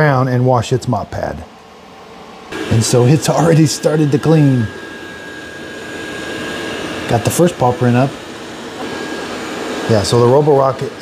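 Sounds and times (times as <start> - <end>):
faint high whine: 0.0 - 11.0
robot vacuum fan noise: 1.4 - 11.0.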